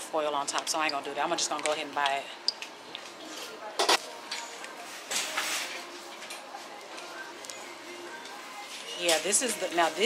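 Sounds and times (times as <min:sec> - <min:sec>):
shop background: 0:00.0 - 0:10.0.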